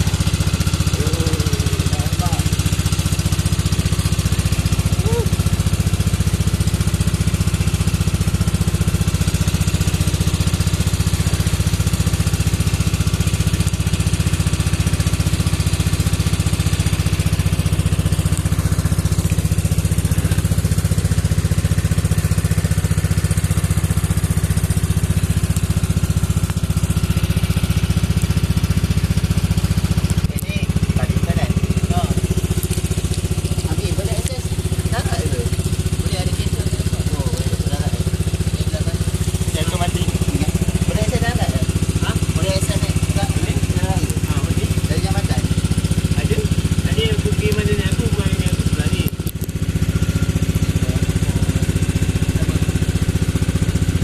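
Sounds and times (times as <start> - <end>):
boat engine droning: 0.0 - 54.0.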